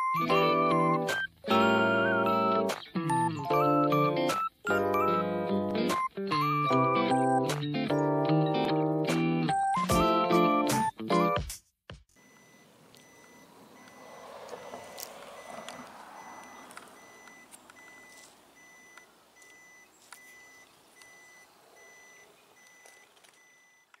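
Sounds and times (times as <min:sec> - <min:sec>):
background noise: 0:12.1 - 0:24.0
faint electronic beeping: 0:12.2 - 0:24.0.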